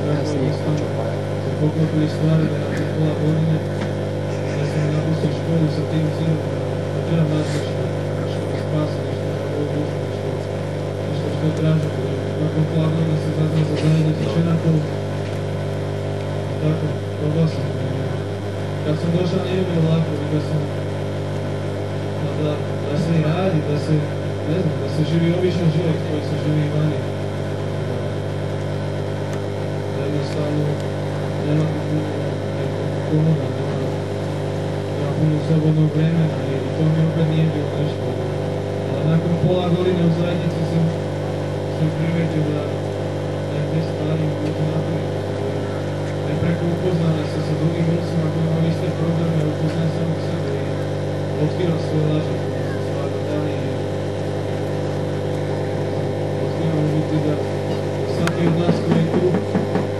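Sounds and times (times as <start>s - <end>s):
faint voices murmuring: 0.0s - 15.3s, 43.5s - 54.0s
steady low hum: 0.0s - 59.9s.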